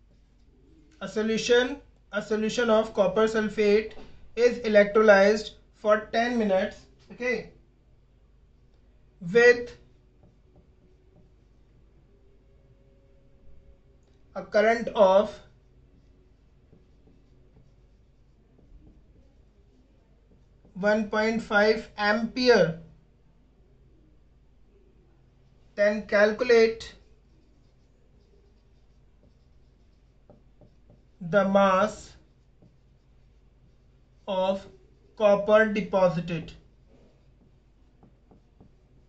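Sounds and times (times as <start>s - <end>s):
marker writing on whiteboard: 0.0s - 7.6s, 8.3s - 22.9s, 24.2s - 39.0s.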